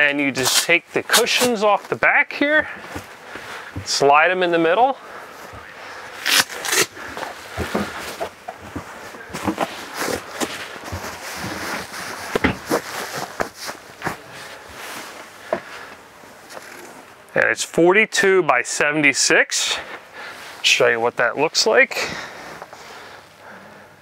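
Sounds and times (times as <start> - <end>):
fabric rustling: 6.2 - 16.8.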